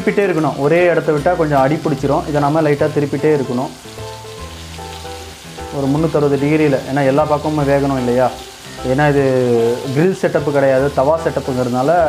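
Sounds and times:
chicken sizzling on a griddle: 0.0s - 12.0s.

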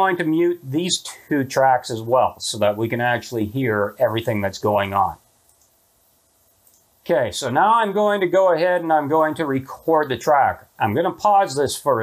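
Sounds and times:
computer mouse clicks: 5.5s - 5.8s.

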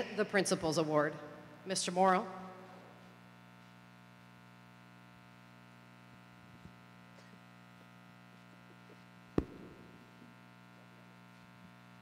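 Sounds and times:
electrical hum from speakers: 0.0s - 12.0s.

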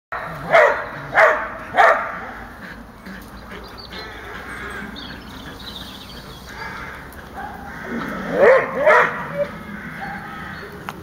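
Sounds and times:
dog barking: 0.1s - 2.2s, 7.4s - 7.7s, 8.3s - 10.3s.

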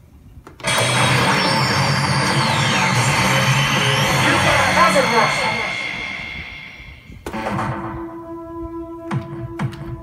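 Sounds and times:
falling electronic start tones: 0.6s - 7.2s
slot machine fanfare: 0.6s - 7.8s
steady electronic tone: 0.6s - 8.4s.

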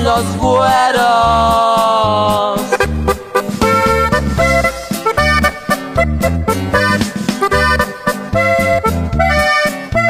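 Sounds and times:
accordion melody: 0.0s - 10.0s
repeating bass beat: 2.8s - 10.0s.

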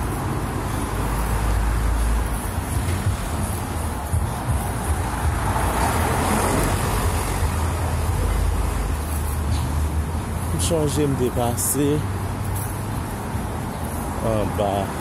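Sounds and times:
vehicle passing loudly: 0.0s - 9.2s
cars going by: 0.0s - 15.0s.

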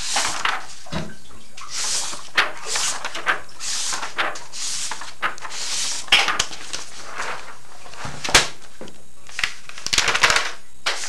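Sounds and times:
sharp paper crackle: 0.0s - 0.9s, 1.6s - 8.7s, 9.3s - 11.0s
paper rustling: 0.0s - 1.0s, 1.6s - 11.0s.

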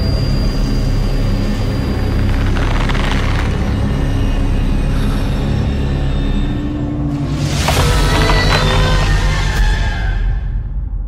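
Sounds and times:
deep ominous rumbling drone: 0.0s - 11.0s.

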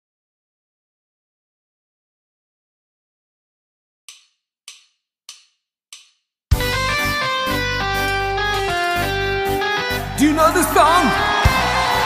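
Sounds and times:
band playing guitar and drums: 6.5s - 12.0s
heavy bass: 6.6s - 12.0s.

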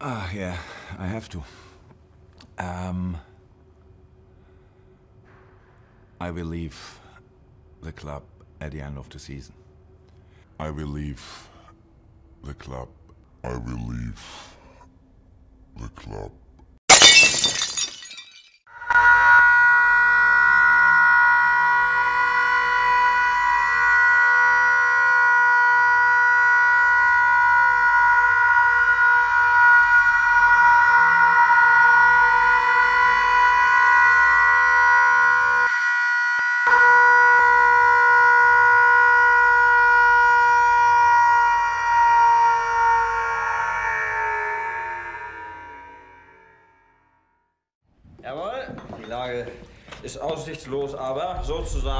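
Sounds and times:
sudden loud burst: 51.3s - 51.9s.

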